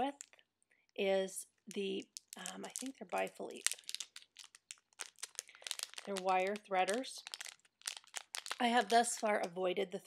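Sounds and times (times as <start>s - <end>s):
packaging crinkling: 1.8s - 9.5s.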